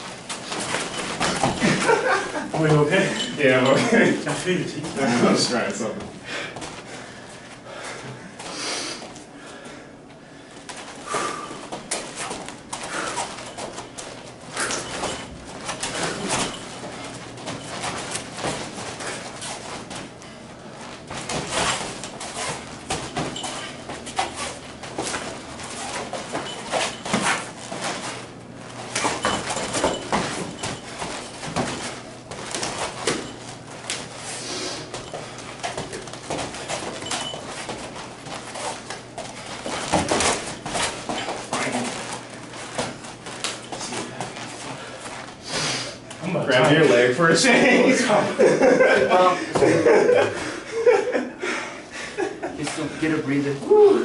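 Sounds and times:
feet shuffling on foam mats: 10.5s - 50.6s.

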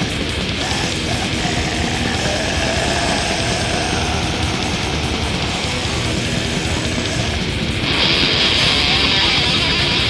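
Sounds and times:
distorted metal guitar and drums: 0.0s - 10.0s.

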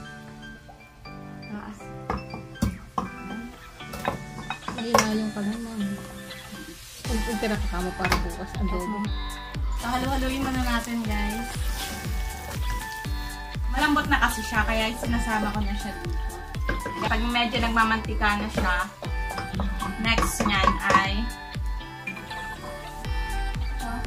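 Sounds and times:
music with person singing: 0.0s - 24.0s
steady bass beat: 7.1s - 22.0s, 22.8s - 24.0s.

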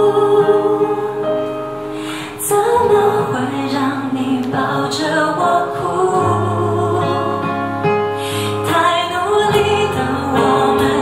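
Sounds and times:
soft musical accompaniment: 0.0s - 11.0s
woman singing a pop ballad: 0.0s - 11.0s.

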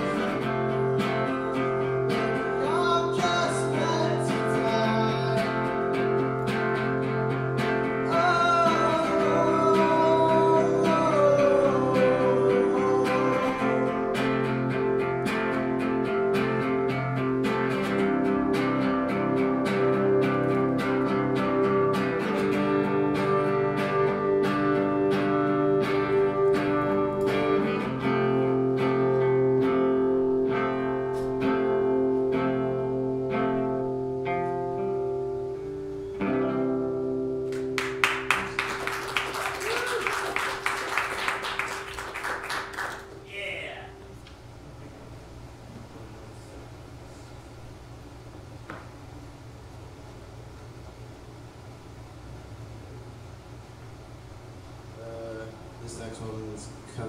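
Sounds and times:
man singing: 0.0s - 5.7s, 8.0s - 14.6s
acoustic guitar strumming: 0.0s - 39.6s.

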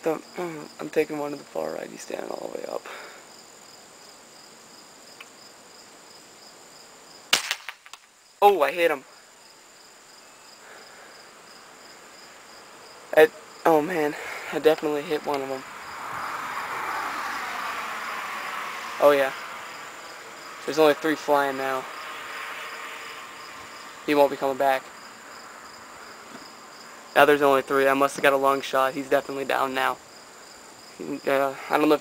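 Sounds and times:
faint insect chirping: 0.0s - 32.0s
steady rushing noise: 13.1s - 29.9s.

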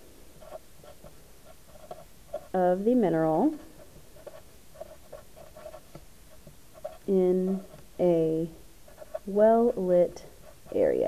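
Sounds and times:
marker squeaking on paper: 0.4s - 2.7s, 4.2s - 7.9s, 8.9s - 11.0s.

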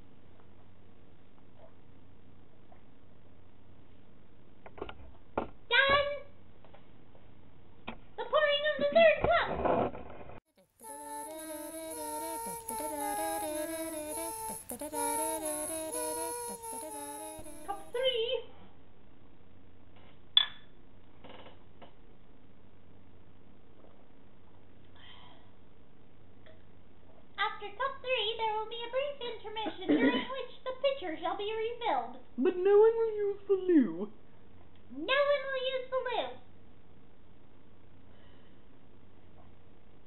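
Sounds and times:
short wordless vocal sounds: 10.8s - 18.0s.

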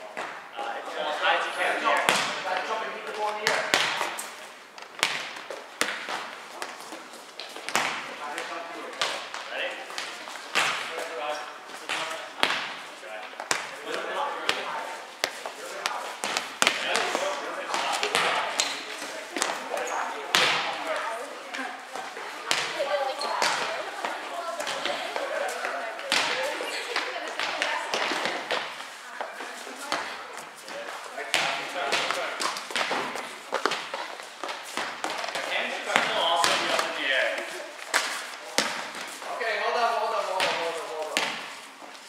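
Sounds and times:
balls bouncing on gym floor: 0.0s - 0.5s, 2.0s - 11.2s, 11.8s - 39.3s, 40.3s - 41.6s
players chattering: 0.0s - 42.0s
volleyballs being hit: 1.9s - 11.2s, 11.8s - 28.9s, 29.8s - 39.2s, 40.3s - 41.6s.

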